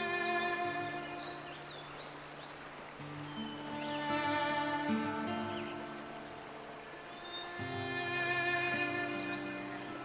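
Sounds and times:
flowing water hiss: 0.0 - 10.0
bird chirps: 0.1 - 4.1, 5.2 - 8.2, 9.0 - 10.0.

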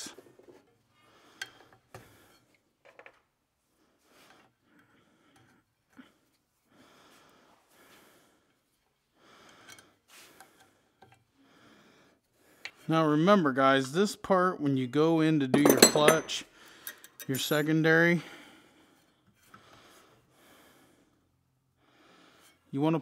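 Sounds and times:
person breathing: 3.9 - 12.9, 16.5 - 17.2, 18.2 - 22.7
faint clicks of small parts: 9.4 - 11.3, 16.7 - 17.4.

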